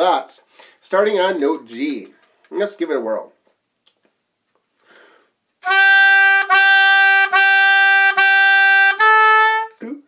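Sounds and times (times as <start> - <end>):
faint breath: 4.8 - 5.4
oboe playing long notes: 5.6 - 10.0.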